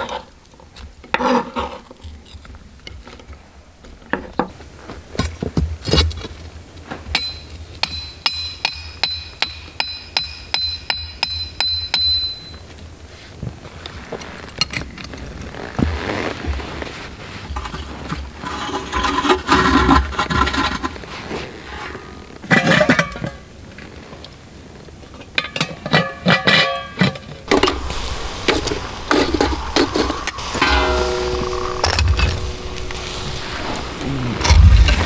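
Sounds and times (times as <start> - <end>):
metal scraping and clinking: 25.2 - 35.0.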